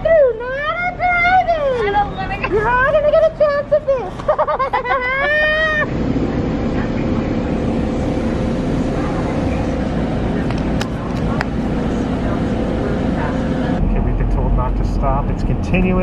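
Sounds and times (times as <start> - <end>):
car engine and tyre rumble: 0.0 - 16.0.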